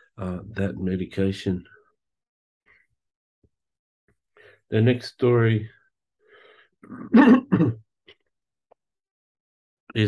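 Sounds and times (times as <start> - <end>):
man clearing his throat: 6.8 - 7.8.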